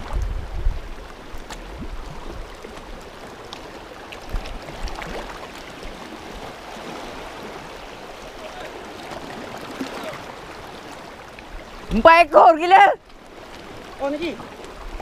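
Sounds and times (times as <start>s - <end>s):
wind rumble on microphone: 0.0s - 3.3s, 4.2s - 7.6s
sea water lapping on rocks: 0.0s - 15.0s.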